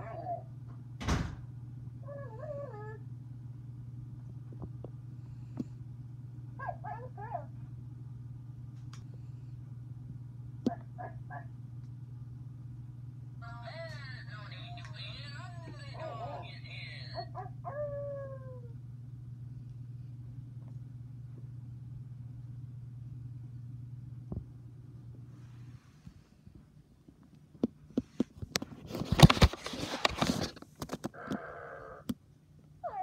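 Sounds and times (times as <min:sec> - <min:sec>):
dog howling: 0:06.6 - 0:07.5, 0:17.2 - 0:18.8
dog whining: 0:32.8 - 0:33.0.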